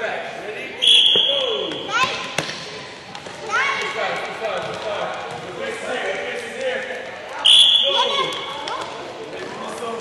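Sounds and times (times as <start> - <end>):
sneakers squeaking: 0.8 - 2.6
basketballs bouncing on court: 1.0 - 5.7.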